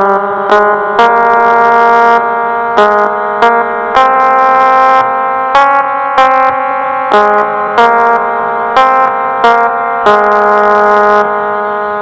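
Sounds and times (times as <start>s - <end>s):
electronic keyboard melody: 0.0s - 12.0s.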